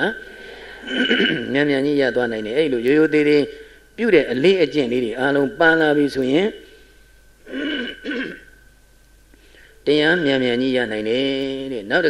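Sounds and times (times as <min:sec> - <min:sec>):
man clearing his throat: 0:00.9 - 0:01.5, 0:07.5 - 0:08.6
man talking: 0:01.4 - 0:06.6, 0:09.8 - 0:12.0.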